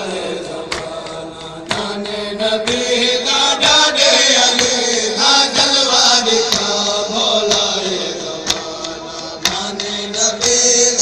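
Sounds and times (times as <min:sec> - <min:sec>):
men chanting a lament: 0:00.0 - 0:11.0
sharp slaps: 0:00.6 - 0:02.9, 0:08.4 - 0:10.6.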